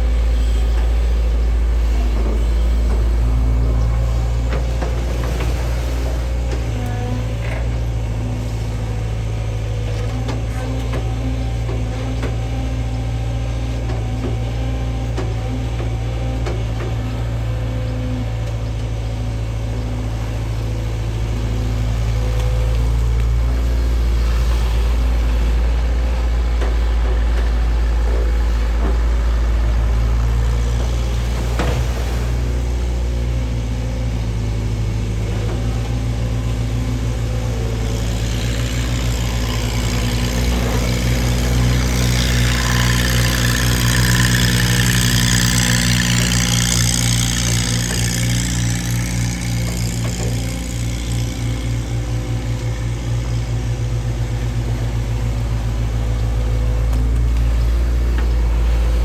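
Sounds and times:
excavator diesel engine running: 0.0 - 59.0
water rushing and churning: 1.0 - 18.0, 19.9 - 59.0.

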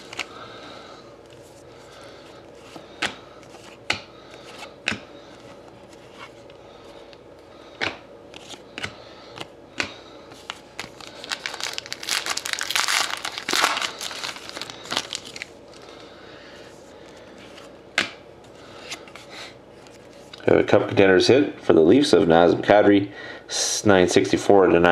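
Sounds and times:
foil wrapper crinkling and tearing: 10.6 - 16.0.

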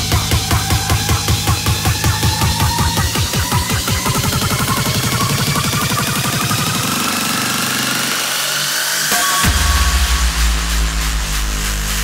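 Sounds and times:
distorted kick drums: 0.0 - 6.1, 9.1 - 12.0.

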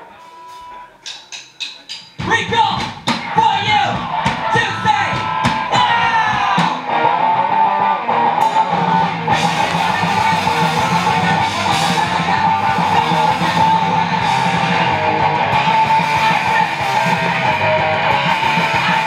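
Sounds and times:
drum hits: 1.1 - 6.9
rock band playing: 2.1 - 19.0.

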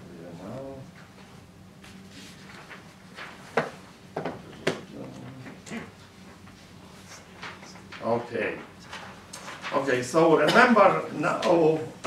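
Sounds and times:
faint low hum: 0.0 - 3.4
paper rustling: 1.9 - 3.8, 6.9 - 10.2.

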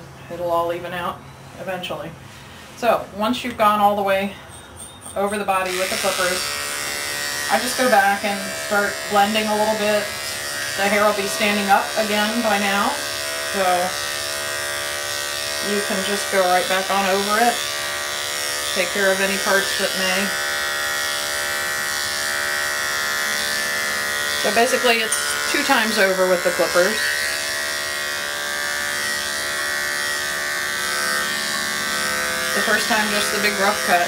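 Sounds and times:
electric clippers buzzing: 3.5 - 34.0.

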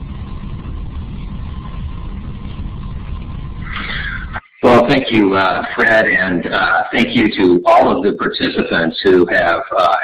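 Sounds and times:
higher hiss: 0.0 - 8.7
low rumbling noise: 0.0 - 10.0.

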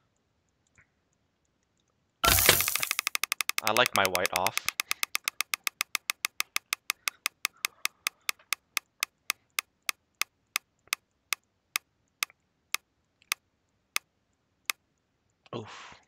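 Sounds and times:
spinning reel ticking: 2.2 - 10.3.

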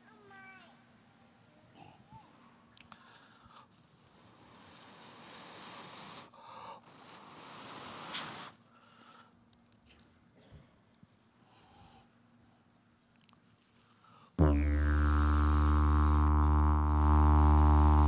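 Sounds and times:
breathy blowing hiss: 2.9 - 9.3, 11.4 - 12.2.

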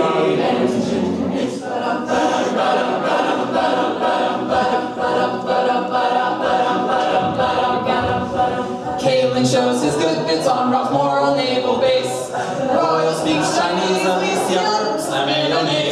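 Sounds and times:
steady beat: 0.0 - 10.4
a cappella group singing harmony: 0.0 - 15.9.

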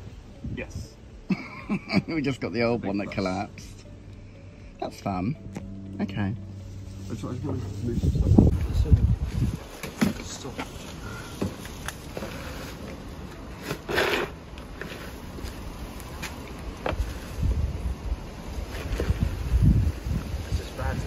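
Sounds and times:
plastic dustpan scraping gravel: 12.0 - 15.7.

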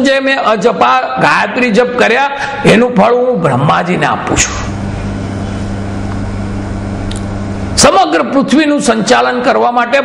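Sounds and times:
low mechanical hum: 2.4 - 9.7.

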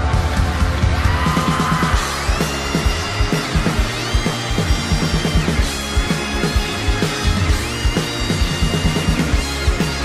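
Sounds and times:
fast drum beat: 0.0 - 10.0.

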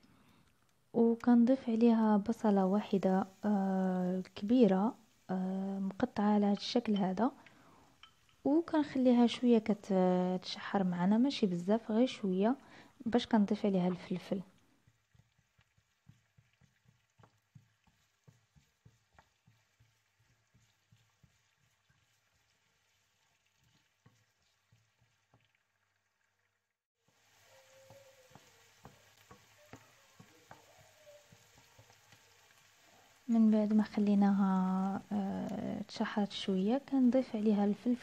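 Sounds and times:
onion sizzling in frying pan: 1.1 - 25.6, 27.0 - 38.0
wooden spoon stirring: 5.9 - 9.8, 13.0 - 25.6, 27.1 - 37.0.

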